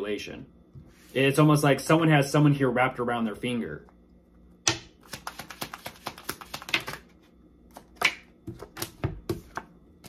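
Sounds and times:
cards being shuffled: 0:05.0 - 0:09.7.

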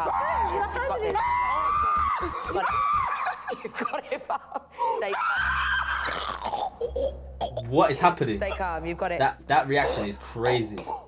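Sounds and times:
woman screaming: 0:00.0 - 0:03.4, 0:05.0 - 0:06.4.

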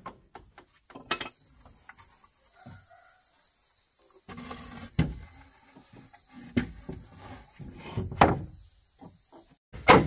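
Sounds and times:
high insect drone: 0:00.0 - 0:09.6
wooden boards scraping on floor: 0:04.3 - 0:08.6.

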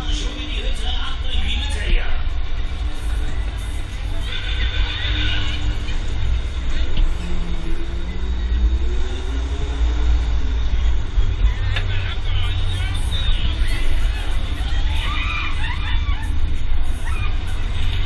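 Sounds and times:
riders' voices: 0:00.0 - 0:09.6, 0:10.5 - 0:18.0.

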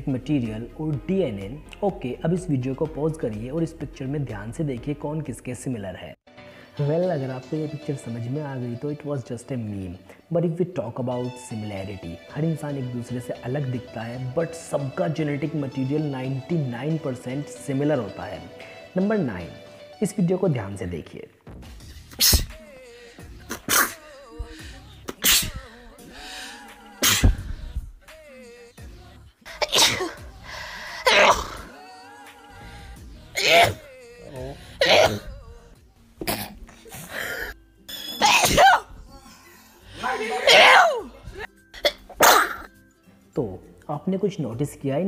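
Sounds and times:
women sneezing: 0:22.1 - 0:22.6, 0:23.5 - 0:24.2, 0:25.1 - 0:26.1, 0:27.0 - 0:27.5, 0:29.5 - 0:30.3, 0:31.0 - 0:31.7, 0:33.4 - 0:33.9, 0:34.8 - 0:35.4, 0:36.2 - 0:39.0, 0:39.9 - 0:42.7.

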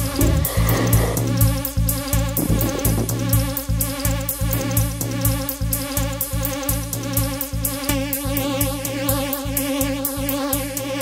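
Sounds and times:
steady synth tones: 0:00.0 - 0:05.3
buzzing synth texture: 0:00.0 - 0:05.5
drum machine kick: 0:00.0 - 0:07.4
hi-hats: 0:00.0 - 0:11.0.

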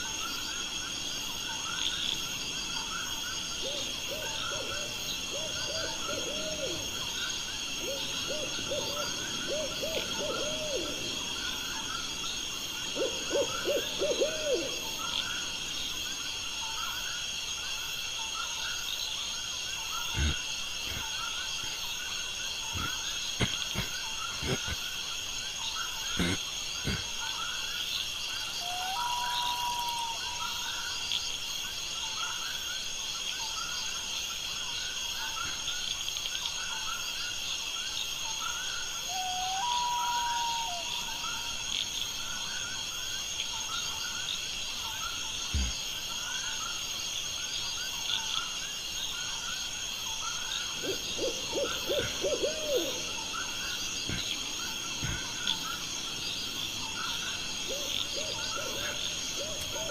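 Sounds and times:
insects chirring: 0:00.0 - 0:59.9
hooting calls: 0:03.6 - 0:15.6, 0:22.6 - 0:24.8, 0:26.1 - 0:27.1, 0:28.6 - 0:30.5, 0:39.1 - 0:41.3, 0:50.7 - 0:59.9.

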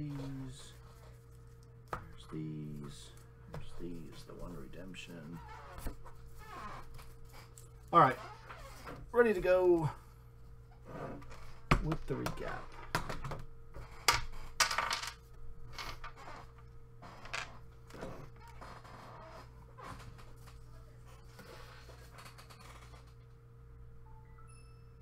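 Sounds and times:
short high chime: 0:24.3 - 0:25.0.

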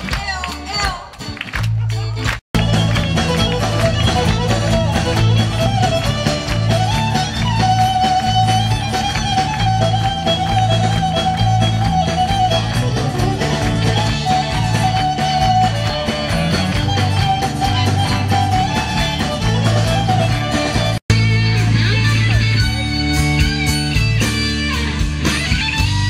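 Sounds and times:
live band playing upbeat tune: 0:00.0 - 0:26.0
fiddle melody: 0:02.6 - 0:26.0.

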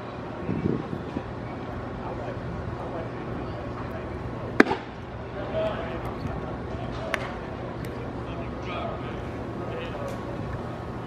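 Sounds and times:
ballpark background noise: 0:00.0 - 0:11.0
baseball smacking into mitt: 0:04.6 - 0:04.9.

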